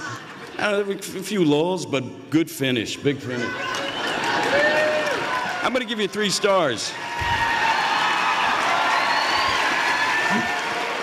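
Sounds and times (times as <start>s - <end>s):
audience applauding and cheering: 3.3s - 11.0s.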